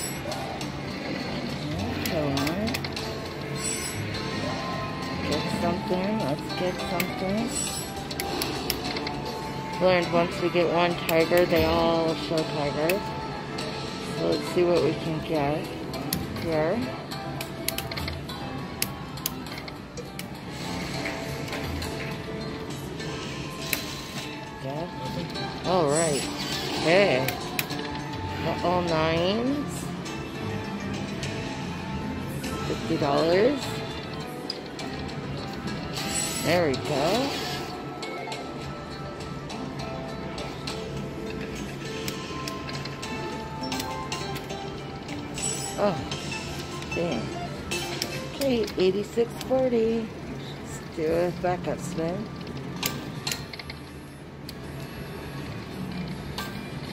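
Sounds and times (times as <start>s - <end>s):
slot machine electronic music: 0.0s - 56.9s.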